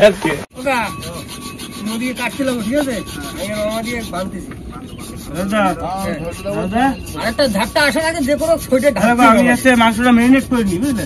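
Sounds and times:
hand rubbing or scraping: 0:00.0 - 0:11.0
men talking quietly: 0:00.0 - 0:11.0.

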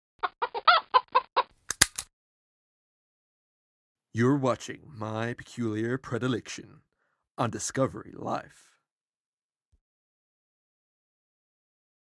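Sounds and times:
hen clucking: 0:00.2 - 0:01.5
sharp clicks: 0:01.7 - 0:02.1.

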